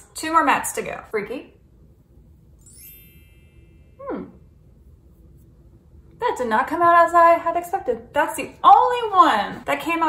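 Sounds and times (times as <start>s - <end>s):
faint high ringing tone: 2.6s - 4.6s.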